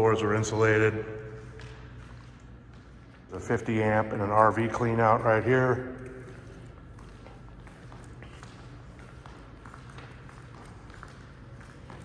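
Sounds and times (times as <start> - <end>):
faint low hum: 0.0 - 12.0
voice echo: 0.0 - 12.0.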